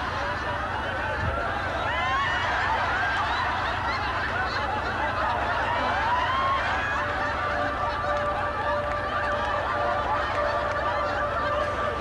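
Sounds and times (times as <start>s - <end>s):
audience laughing and hooting: 0.0s - 12.0s.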